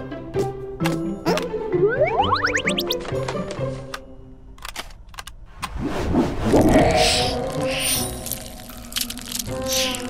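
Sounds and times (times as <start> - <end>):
light background music: 0.0 - 5.1.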